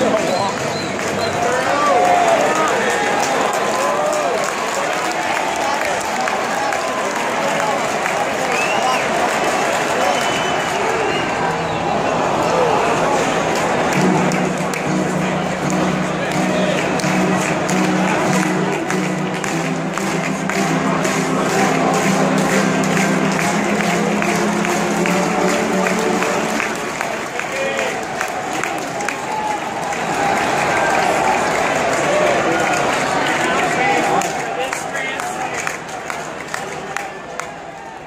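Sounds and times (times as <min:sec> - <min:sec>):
crowd cheering and clapping: 0:00.0 - 0:38.0
held low chords over loudspeakers: 0:13.8 - 0:27.3.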